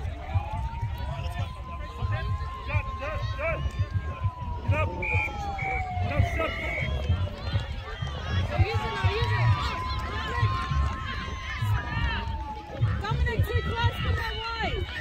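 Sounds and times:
people shouting and calling: 0.0 - 15.0.

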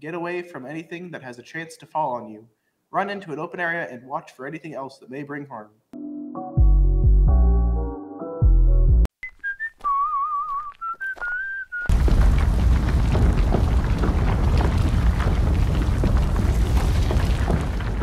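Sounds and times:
music chords: 6.0 - 9.1
wavering sliding whistled notes: 9.2 - 11.9
earthquake rumble effect: 11.9 - 18.0.

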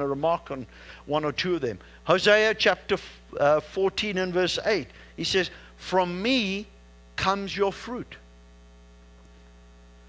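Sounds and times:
low mains hum: 0.0 - 10.0.

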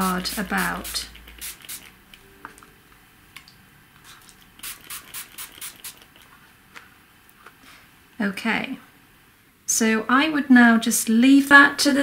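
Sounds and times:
spray bottle spritzing: 0.0 - 2.0, 4.2 - 6.2.

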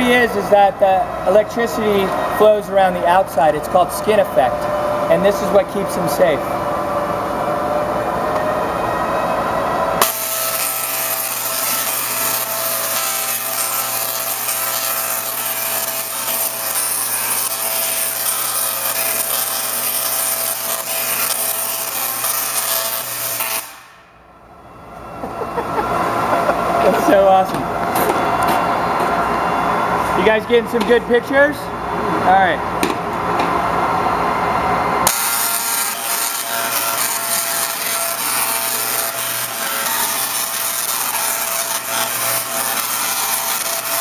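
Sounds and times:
electric arcs crackling: 10.0 - 24.1, 35.1 - 44.0.

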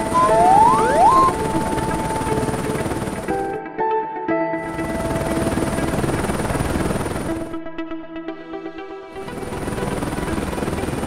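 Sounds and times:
rising tone: 0.0 - 2.6
cartoon helicopter rotor chop: 0.0 - 3.3.

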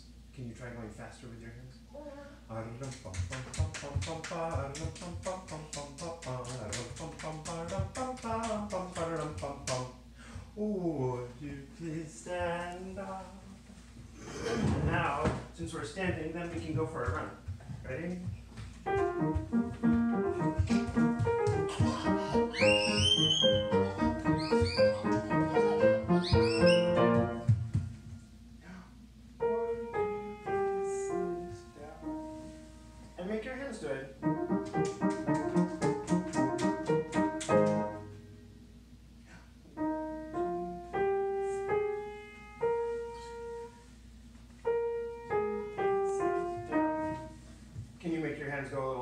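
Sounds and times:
upright piano playing: 18.8 - 27.8, 29.4 - 33.4, 34.2 - 38.4, 39.7 - 43.9, 44.6 - 47.4.

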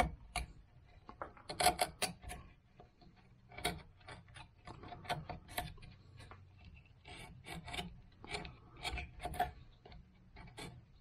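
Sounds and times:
carving tool scraping bark: 0.0 - 11.0.

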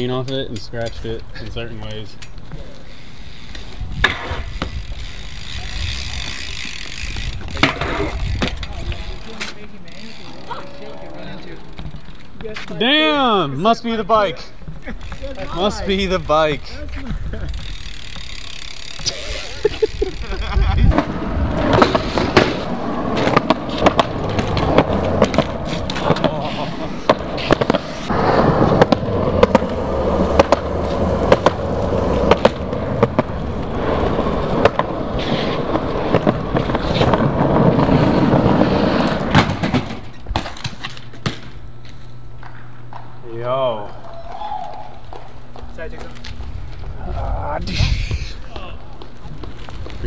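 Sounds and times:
bike wheels rolling on concrete: 0.0 - 50.0
bike landing knocks and clatters: 6.3 - 8.8, 21.0 - 26.4, 39.2 - 41.7.

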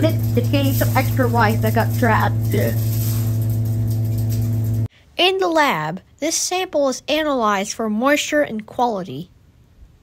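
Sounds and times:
electric machinery hum: 0.0 - 4.9.

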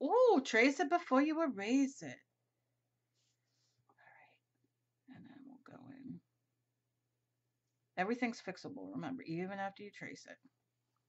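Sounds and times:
faint whispered word: 3.9 - 4.4.

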